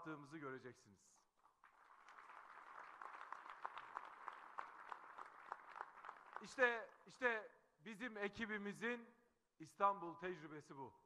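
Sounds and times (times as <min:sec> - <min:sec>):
crowd applauding: 0:01.4 - 0:06.7.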